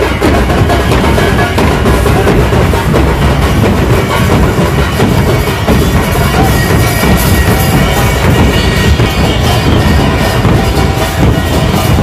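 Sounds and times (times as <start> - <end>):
large drums beaten with sticks: 0.0 - 12.0.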